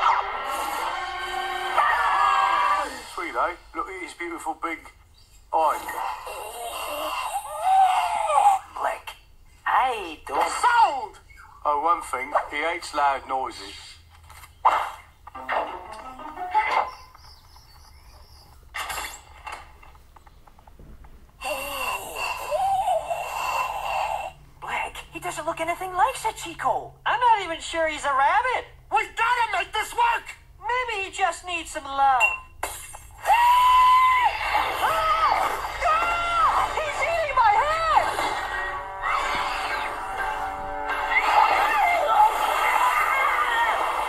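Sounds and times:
high-pitched cartoon voice screaming: 1.7s - 3.0s, 33.2s - 38.2s, 41.2s - 44.0s.

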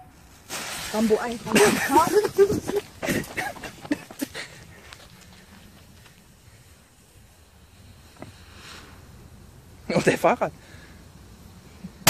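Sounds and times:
faint outdoor background: 0.0s - 12.0s
hurried footsteps: 1.4s - 6.4s.

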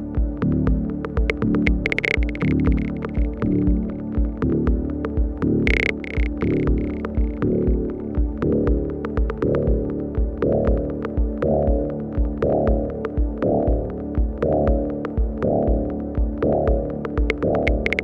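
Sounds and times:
droning synth bass: 0.0s - 18.0s
ticking hi-hat clicks: 0.0s - 18.0s.

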